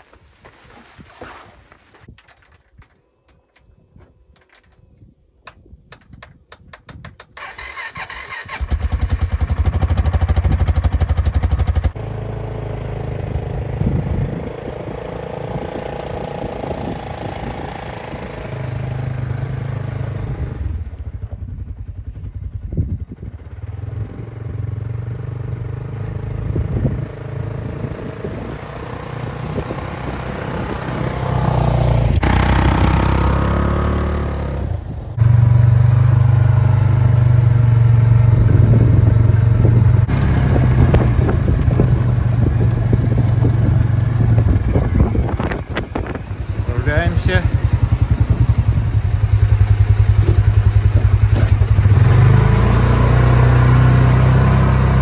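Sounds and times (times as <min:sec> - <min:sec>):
buggy engine starting and running: 0:07.2 - 0:55.0.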